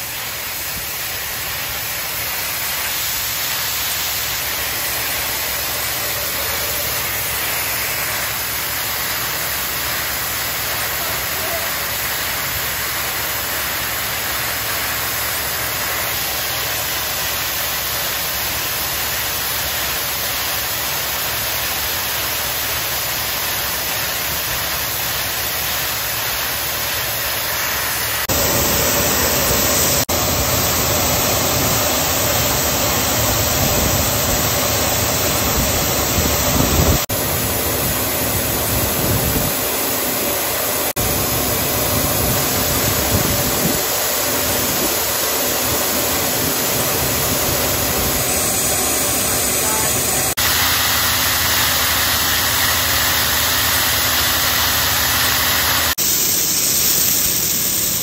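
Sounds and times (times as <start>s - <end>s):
grain vacuum rushing hiss: 0.0s - 58.0s.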